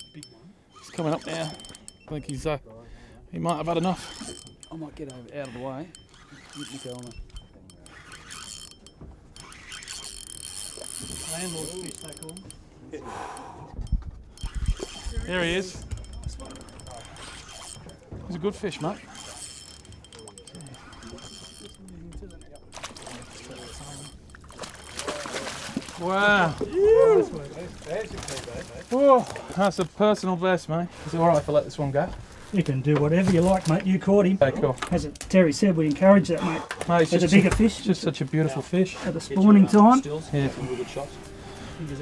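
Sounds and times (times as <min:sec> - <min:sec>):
fishing reel gears ticking: 0:00.0 - 0:02.6, 0:03.3 - 0:26.4
water splashing and sloshing: 0:13.6 - 0:30.2, 0:30.9 - 0:34.1.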